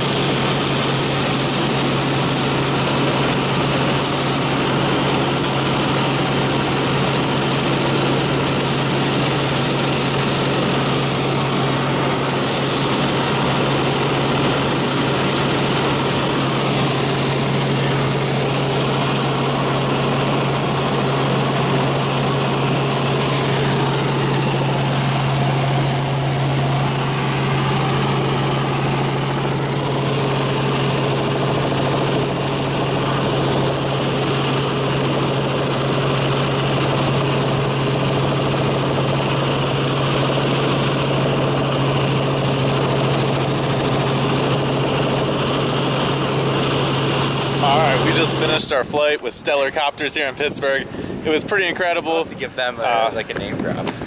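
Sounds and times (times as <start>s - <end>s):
helicopter engine and rotor drone: 0.0s - 54.0s.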